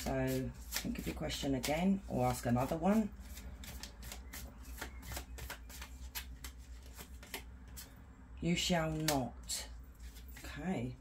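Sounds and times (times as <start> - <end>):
cards being shuffled: 0.0 - 8.0, 8.8 - 10.6.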